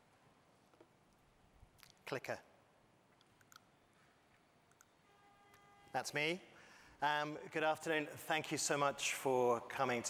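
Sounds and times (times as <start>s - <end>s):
man speaking: 2.0s - 2.5s, 5.9s - 10.0s.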